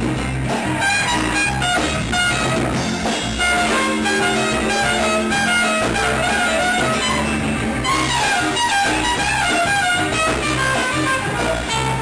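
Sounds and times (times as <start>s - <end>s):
bass guitar: 0.0s - 12.0s
drums: 0.0s - 12.0s
electric guitars: 0.0s - 12.0s
keyboard: 0.0s - 12.0s
trumpet: 0.5s - 12.0s.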